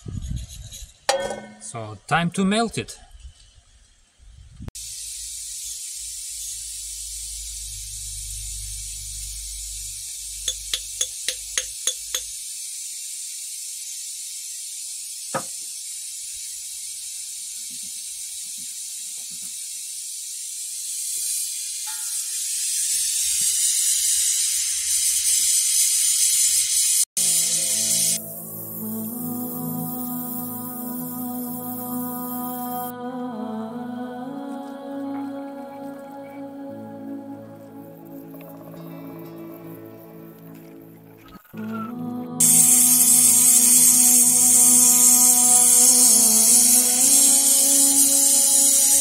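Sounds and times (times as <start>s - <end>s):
gas torch flame hissing: 4.7s - 32.9s, 42.4s - 49.0s
soft music: 27.2s - 49.0s.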